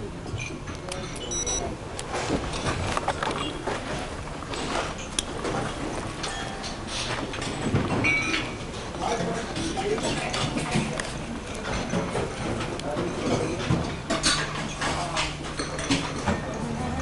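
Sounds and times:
crockery and cutlery clinking: 4.6s - 17.0s.

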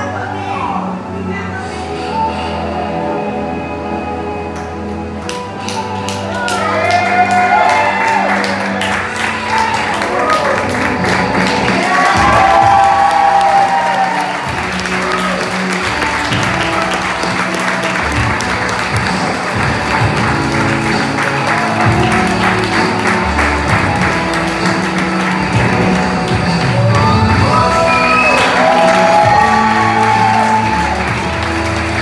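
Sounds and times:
music playing: 0.0s - 32.0s
crowd clapping and cheering: 4.5s - 32.0s.

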